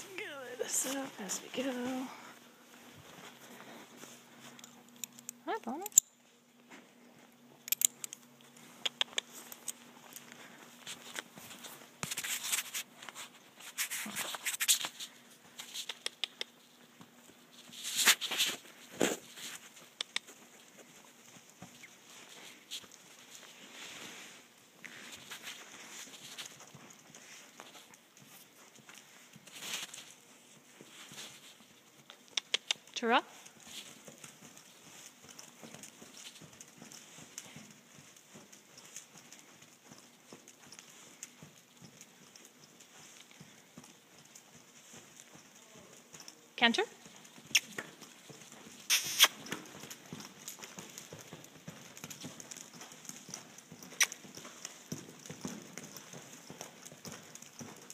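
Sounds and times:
horse hooves trotting on sand: 0.0s - 57.9s.

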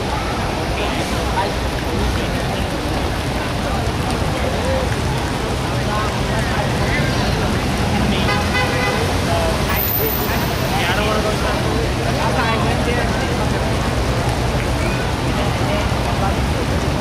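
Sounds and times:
passers-by talking: 0.0s - 17.0s
road traffic: 0.0s - 17.0s.

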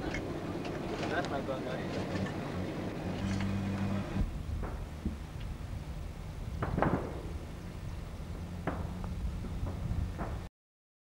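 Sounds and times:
truck engine humming: 0.0s - 10.5s.

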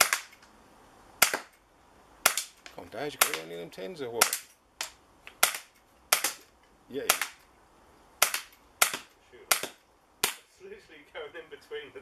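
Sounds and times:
air pistol shots cracking: 0.0s - 0.4s, 1.2s - 1.6s, 2.2s - 3.6s, 4.2s - 7.5s, 8.2s - 10.5s.

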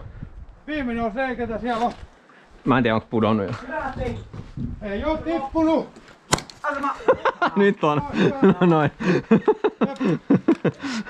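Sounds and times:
man laughing: 6.7s - 11.0s.

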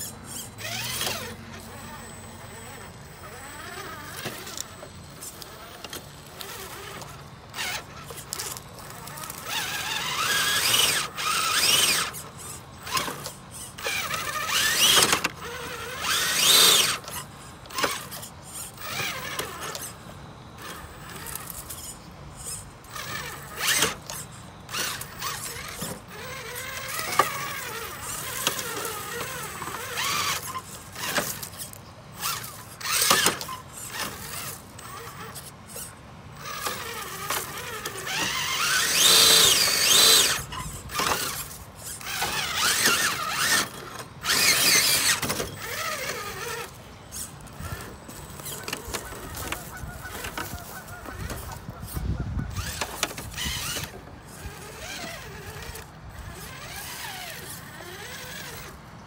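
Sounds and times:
rc car motor whining: 0.0s - 59.0s.

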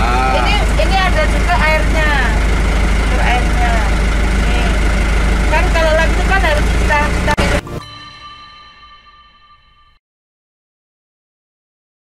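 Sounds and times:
voices talking: 0.0s - 7.8s
low mechanical drone: 0.0s - 9.3s.

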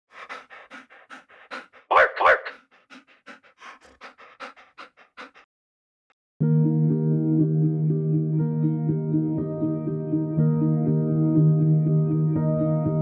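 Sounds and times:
dog huffing: 0.0s - 5.5s
dog panting: 0.0s - 5.5s.

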